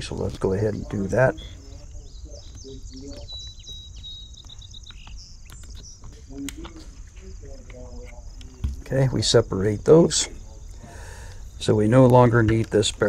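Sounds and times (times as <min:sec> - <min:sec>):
insects chirping: 0:00.0 - 0:13.0.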